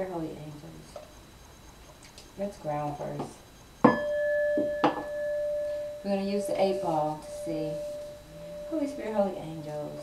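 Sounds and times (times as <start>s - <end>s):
singing bowl ringing: 2.8s - 10.0s.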